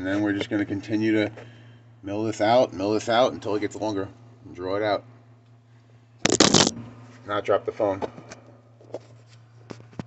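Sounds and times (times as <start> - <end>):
phone handling crackle: 6.3 - 6.7.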